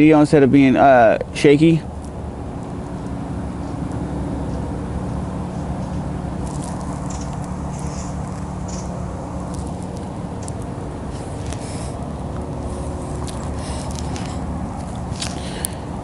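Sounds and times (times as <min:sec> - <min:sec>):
low motor hum: 0:00.0 - 0:16.0.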